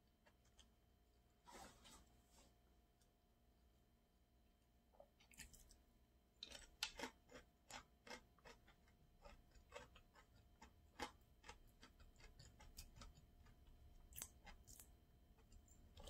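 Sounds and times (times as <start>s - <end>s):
person chewing food: 5.1s - 5.8s, 6.4s - 16.0s.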